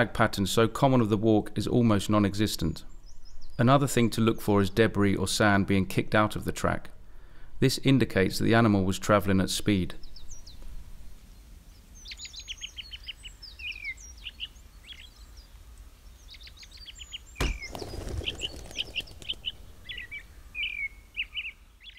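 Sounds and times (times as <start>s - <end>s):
songbirds chirping: 0.3s - 21.9s
sudden thump: 17.4s - 20.3s
brief rush: 17.4s - 20.6s.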